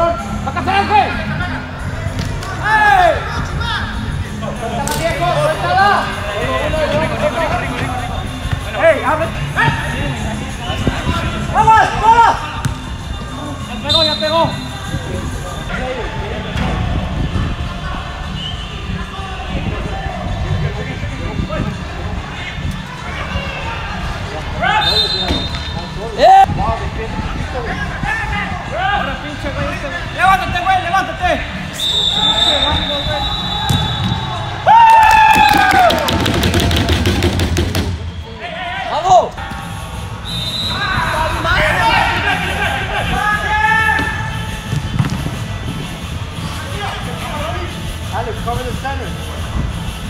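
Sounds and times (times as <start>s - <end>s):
noise of play in indoor hall: 0.0s - 50.0s.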